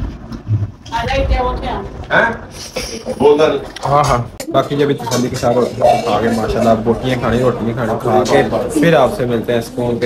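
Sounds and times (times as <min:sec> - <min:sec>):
low rumble: 0:00.0 - 0:03.2
man speaking: 0:02.1 - 0:10.0.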